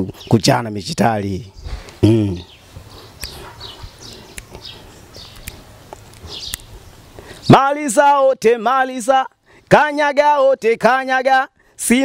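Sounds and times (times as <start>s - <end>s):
bird chirping: 0.0s - 7.8s
sharp clicks: 3.2s - 3.4s, 4.3s - 6.7s.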